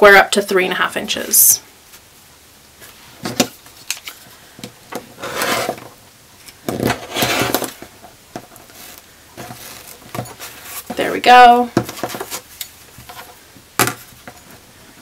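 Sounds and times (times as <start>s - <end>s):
ruler scraping on cutting mat: 5.2s - 5.9s, 6.9s - 7.7s.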